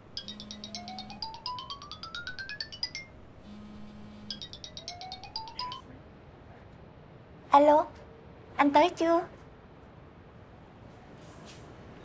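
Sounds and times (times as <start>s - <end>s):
phone ringtone beeps: 0.1s - 5.8s.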